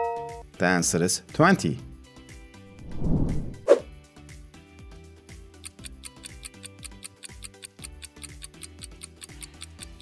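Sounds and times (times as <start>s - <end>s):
fast ticking beat: 5.7s - 10.0s.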